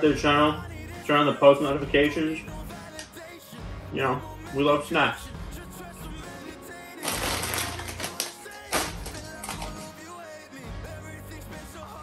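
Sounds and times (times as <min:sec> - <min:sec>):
background music: 0:00.0 - 0:12.0
chip bag crinkling: 0:07.0 - 0:10.1.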